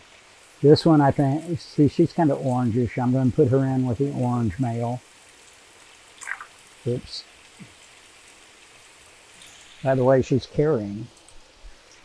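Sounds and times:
hiss of water in fish tanks: 0.0s - 12.0s
man speaking: 0.6s - 5.0s, 6.9s - 7.2s, 9.8s - 11.1s.

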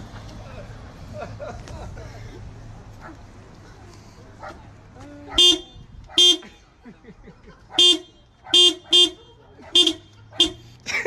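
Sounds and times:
car horn toots: 5.4s - 6.4s, 7.8s - 10.6s.

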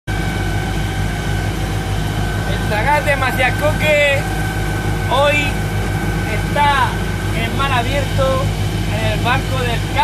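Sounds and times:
boat engine drone: 0.1s - 10.0s
high engine whine: 0.1s - 10.0s.

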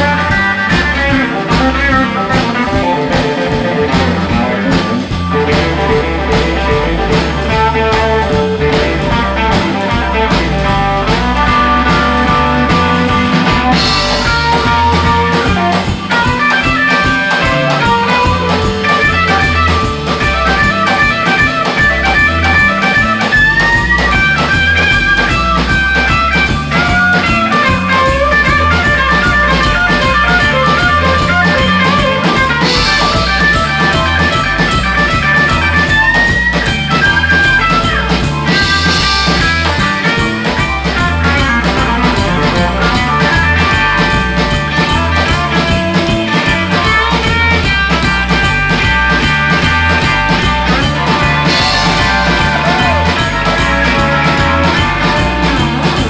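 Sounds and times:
bass guitar: 0.0s - 56.0s
drum kit: 0.0s - 56.0s
electric guitar lead with bent notes: 0.0s - 56.0s
keyboard: 0.0s - 56.0s.

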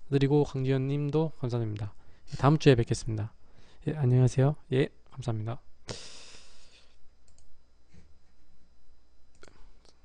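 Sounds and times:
breathy hiss at microphone: 5.9s - 7.0s
computer mouse clicks: 7.2s - 7.5s.

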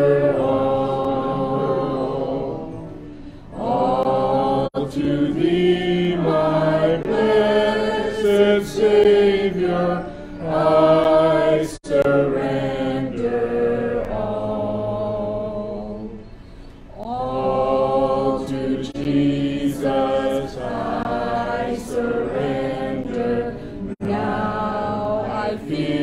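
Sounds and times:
man and woman singing hymn: 0.0s - 26.0s.

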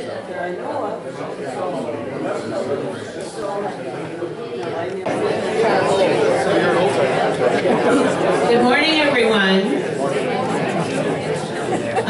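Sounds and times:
audience chattering: 0.0s - 12.0s.

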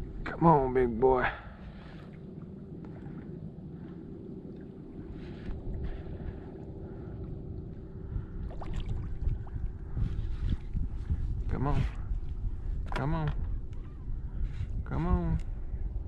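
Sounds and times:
steady low hum: 0.0s - 16.0s
wind buffeting microphone: 0.0s - 16.0s.

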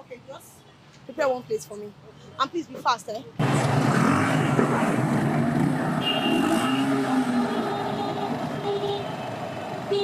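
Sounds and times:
road traffic: 0.0s - 10.0s.

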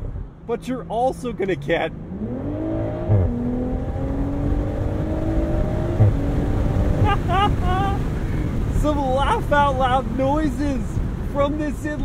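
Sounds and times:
car engine accelerating: 0.0s - 9.0s
gear shift thump: 6.0s - 6.4s.

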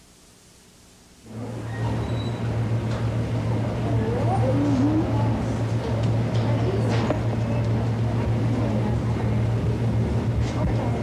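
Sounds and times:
bakery shop room noise: 0.0s - 11.0s
steady low hum: 0.0s - 11.0s.

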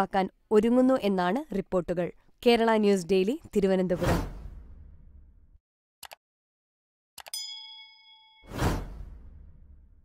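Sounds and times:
loud whoosh: 4.0s - 5.4s, 8.5s - 10.0s
bell-like ding: 7.4s - 8.6s.

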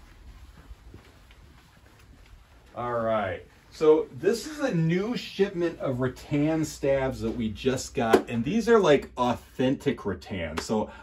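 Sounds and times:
soft footfalls on carpet: 0.0s - 7.6s.

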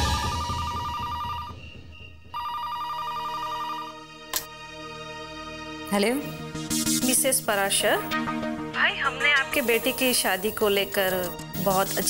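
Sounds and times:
landline telephone ringing: 2.4s - 4.1s.

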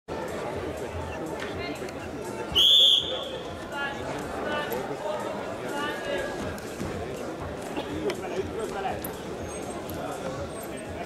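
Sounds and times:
crowd chatter: 0.1s - 11.0s
referee's whistle blast: 2.5s - 3.3s.

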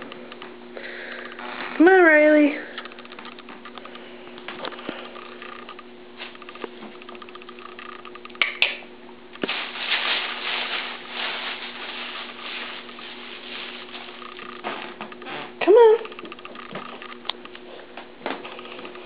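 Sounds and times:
rustling and scrabbling: 0.0s - 8.4s, 9.4s - 19.0s
steady low hum: 0.0s - 19.0s.

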